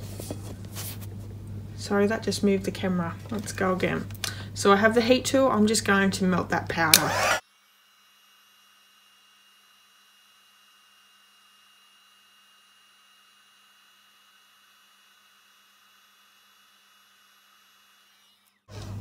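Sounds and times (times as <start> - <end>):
heat tool blower rush of air: 6.9 - 7.4.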